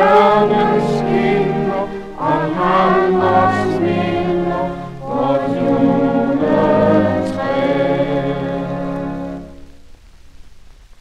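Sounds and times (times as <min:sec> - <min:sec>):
choir singing on old record: 0:00.0 - 0:09.8.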